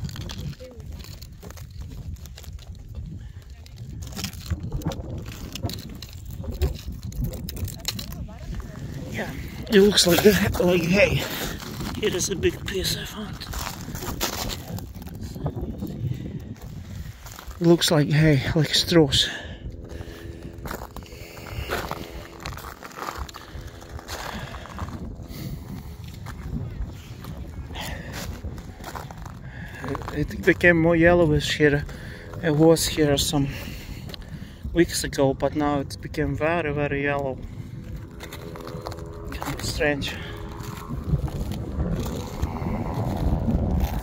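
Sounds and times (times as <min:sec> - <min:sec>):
footsteps crunching on rock: 0:00.0 - 0:17.8, 0:19.8 - 0:30.6, 0:37.8 - 0:44.0
wind rumble on microphone: 0:00.0 - 0:44.0.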